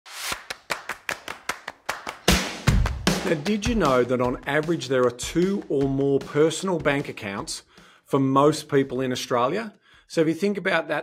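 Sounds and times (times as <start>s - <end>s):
sharp percussive hits: 0.1s - 7.5s.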